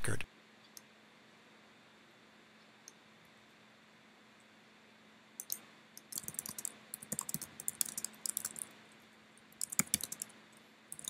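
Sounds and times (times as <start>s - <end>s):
computer keyboard typing: 5.4s - 8.8s, 9.5s - 11.0s.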